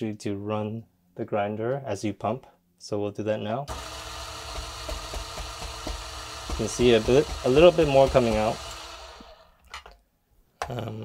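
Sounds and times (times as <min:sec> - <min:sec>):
coffee grinder motor running: 0:03.7 - 0:09.6.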